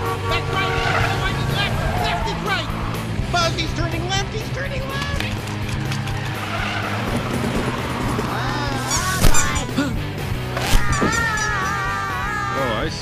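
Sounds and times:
orchestral chase music: 0:00.0 - 0:11.8
tires squealing: 0:00.0 - 0:12.9.

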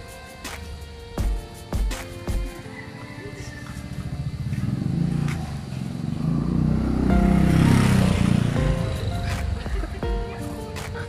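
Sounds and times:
motor scooter passing: 0:02.6 - 0:11.0.

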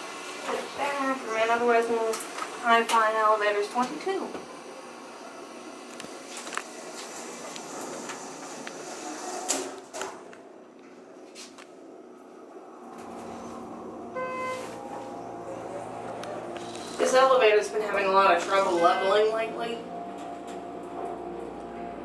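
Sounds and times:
elevator running hum: 0:00.0 - 0:22.0
short electronic tone: 0:13.0 - 0:17.0.

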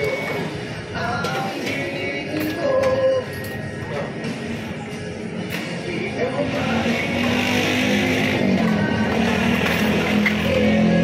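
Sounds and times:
pop music: 0:00.9 - 0:03.4, 0:05.5 - 0:11.0.

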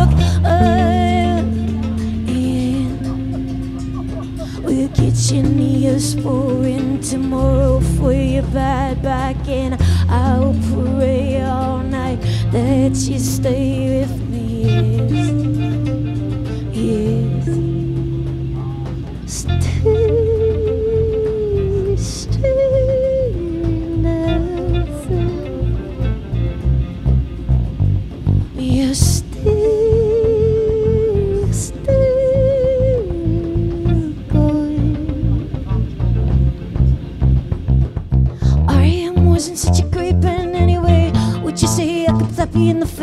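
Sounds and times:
bass guitar: 0:00.0 - 0:43.0
drums: 0:00.0 - 0:43.0
wavering lead melody: 0:00.0 - 0:43.0.

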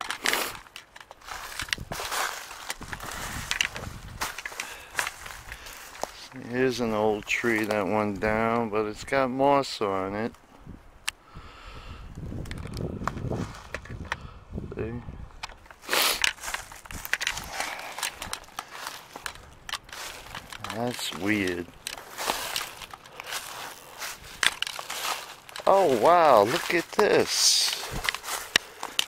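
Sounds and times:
footsteps crunching dry leaves: 0:00.0 - 0:08.6, 0:13.2 - 0:13.8, 0:15.6 - 0:29.0
twigs crackling underfoot: 0:00.0 - 0:11.2, 0:12.0 - 0:29.0.

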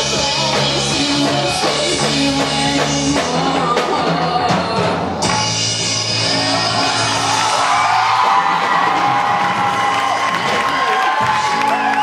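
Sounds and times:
rock band holding a chord: 0:00.0 - 0:12.0
audience whooping and cheering: 0:06.3 - 0:12.0.

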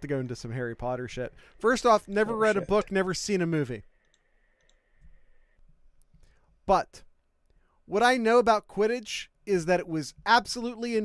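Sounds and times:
faint clicks: 0:03.9 - 0:06.4.

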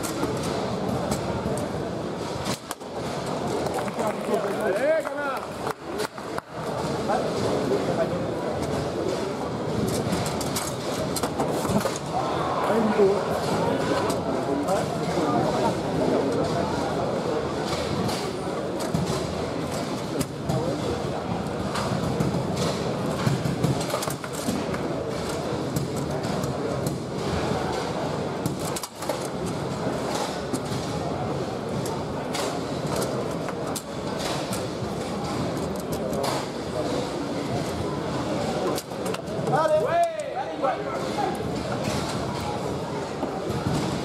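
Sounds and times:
crowd chatter: 0:00.0 - 0:44.0.

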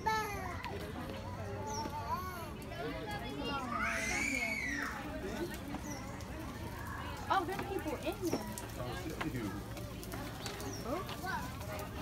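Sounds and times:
children's voices: 0:00.0 - 0:06.0, 0:09.4 - 0:12.0
chatter of people: 0:00.0 - 0:12.0.

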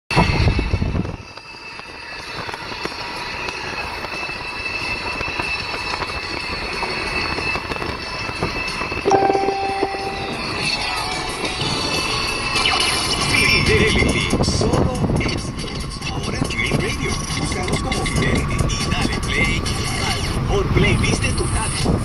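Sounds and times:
road and tyre noise in car: 0:00.1 - 0:22.0
held tone: 0:09.1 - 0:11.0.

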